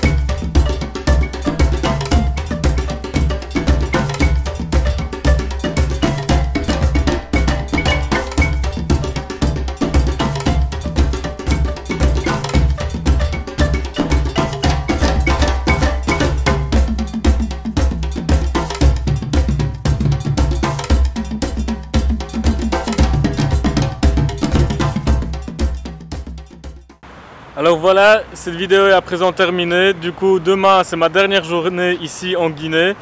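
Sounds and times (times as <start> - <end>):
clanking metal bell: 0.0 - 26.6
drums: 0.0 - 27.0.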